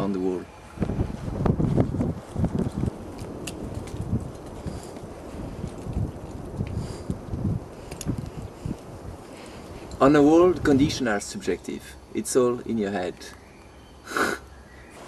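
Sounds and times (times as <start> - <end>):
wind buffeting microphone: 0.0 - 12.1.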